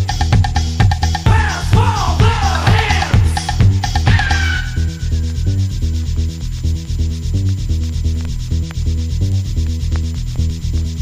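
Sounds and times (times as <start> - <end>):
hissing hi-hat percussion: 0.0 - 11.0
synth bassline: 0.0 - 11.0.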